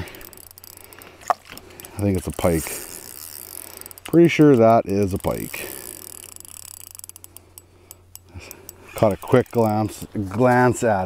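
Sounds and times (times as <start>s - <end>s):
fishing reel ticking: 0.0s - 11.0s.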